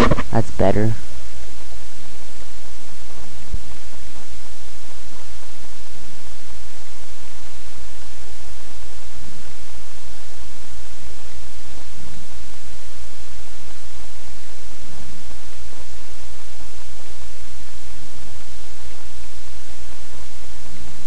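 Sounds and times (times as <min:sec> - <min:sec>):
constant low hum: 0:00.0 - 0:21.0.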